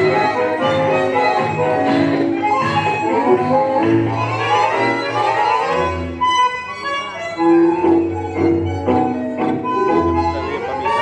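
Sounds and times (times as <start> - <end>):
tango orchestra music: 0.0 - 11.0.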